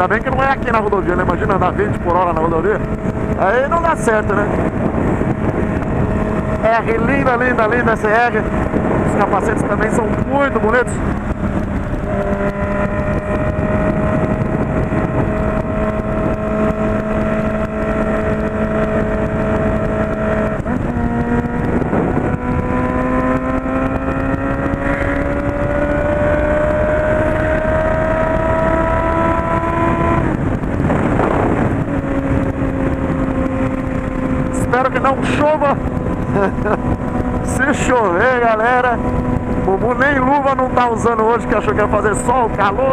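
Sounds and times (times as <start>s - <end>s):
motorcycle engine at speed: 0.0s - 42.9s
wind and road noise: 0.0s - 42.9s.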